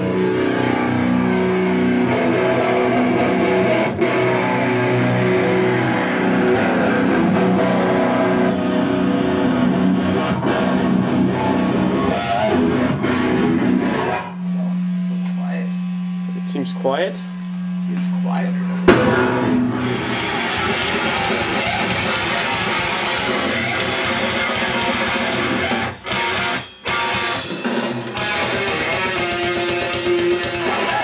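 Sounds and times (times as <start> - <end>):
amp hum: 0.0 - 31.0
distorted electric guitar chords: 0.0 - 31.0.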